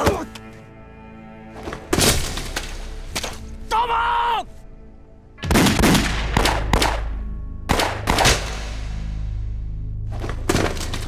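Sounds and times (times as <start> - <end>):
gunshots with echoing tails: 5.4 - 9.2.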